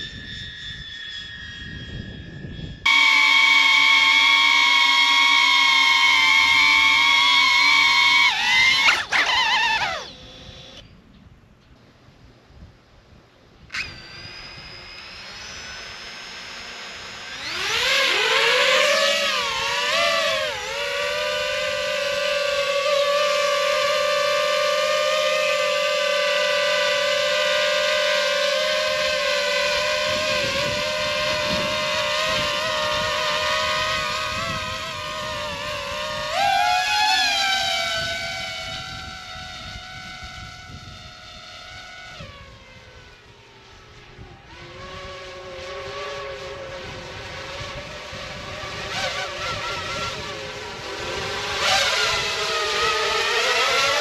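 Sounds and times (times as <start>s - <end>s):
drone motors high-pitched whine: 0.0s - 11.0s, 12.3s - 54.0s.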